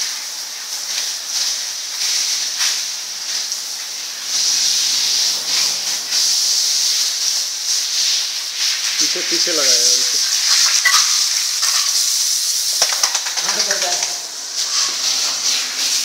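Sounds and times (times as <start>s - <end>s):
garden hose spraying water: 0.0s - 16.0s.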